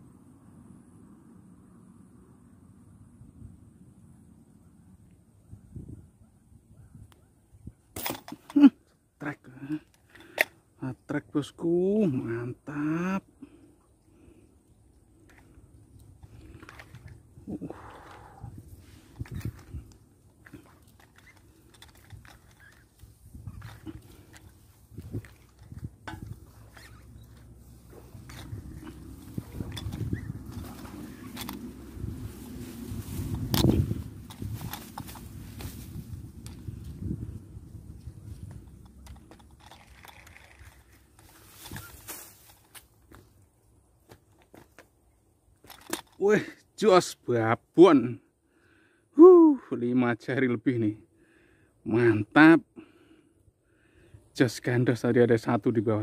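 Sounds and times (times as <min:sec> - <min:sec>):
rustling handling noise: 0:18.7 - 0:37.0, 0:38.1 - 0:43.4.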